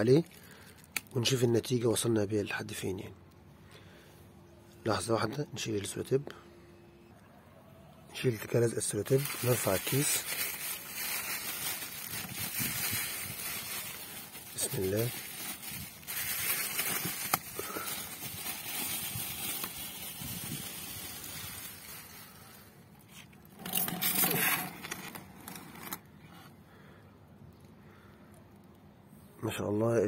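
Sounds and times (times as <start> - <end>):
plastic bag crinkling: 8.8 - 26.1.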